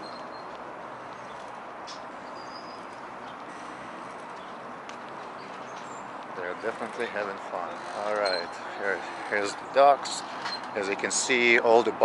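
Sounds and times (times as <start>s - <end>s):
bird chirps: 0.0s - 0.6s, 1.2s - 3.4s
waterfront background noise: 0.0s - 12.0s.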